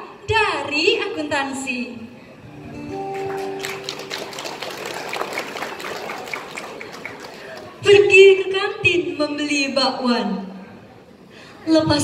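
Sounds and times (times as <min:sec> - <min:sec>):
band held chord: 0:02.4 - 0:05.0.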